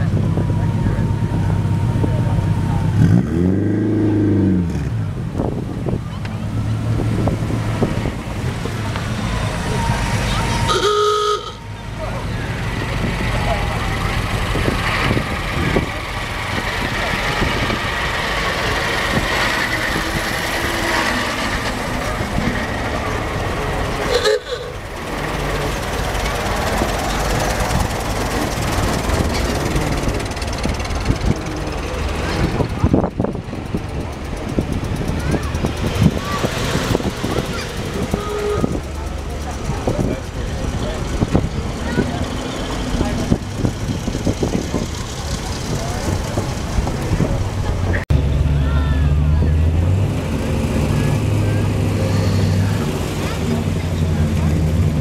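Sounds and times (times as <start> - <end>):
car engines rolling past: 0.0 - 55.0
crowd chatter: 0.0 - 55.0
horn toots: 9.8 - 11.7, 24.0 - 24.8, 37.9 - 38.9.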